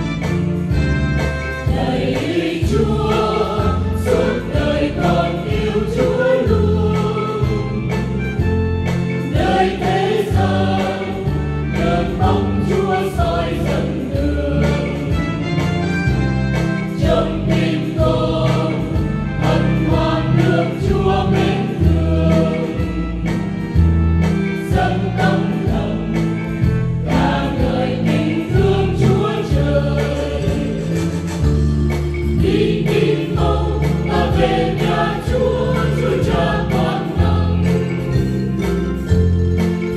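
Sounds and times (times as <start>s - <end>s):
church choir singing a hymn: 1.6s - 8.4s, 9.2s - 16.2s, 16.9s - 23.4s, 24.6s - 31.5s, 32.3s - 38.4s.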